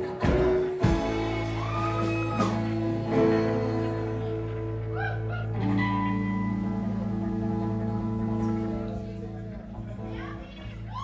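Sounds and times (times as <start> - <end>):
live band held notes: 0.0 - 11.0.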